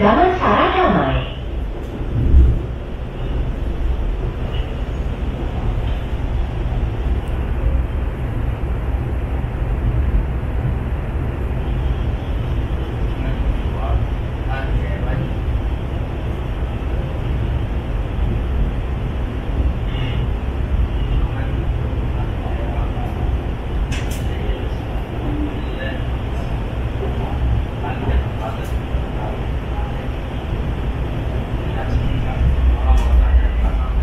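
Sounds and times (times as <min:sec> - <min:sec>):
train wheels rumbling on rail: 0:00.0 - 0:34.0.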